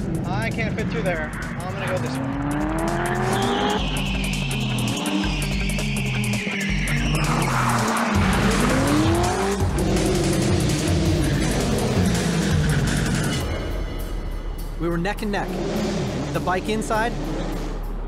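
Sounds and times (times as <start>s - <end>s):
background music: 0.0s - 18.0s
car engine revving hard: 0.2s - 5.8s, 6.9s - 13.4s, 15.2s - 18.0s
tires squealing: 0.9s - 9.6s.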